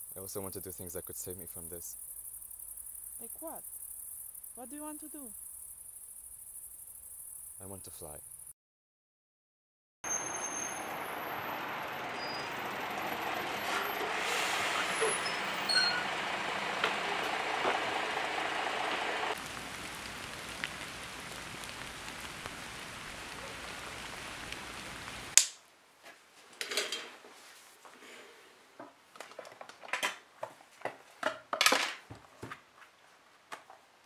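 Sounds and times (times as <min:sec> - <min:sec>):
bus engine running: 0:10.1 - 0:19.4.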